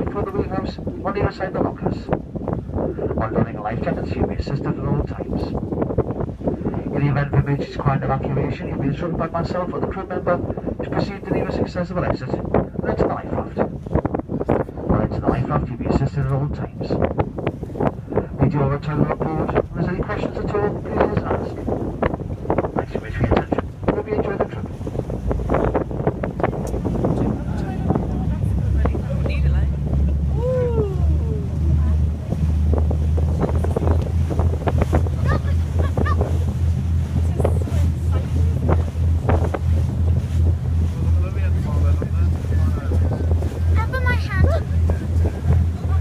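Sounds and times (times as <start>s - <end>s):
boat engine drone: 0.0s - 46.0s
wind buffeting microphone: 0.0s - 46.0s
water splashes: 16.7s - 46.0s
indistinct voices: 25.5s - 39.6s.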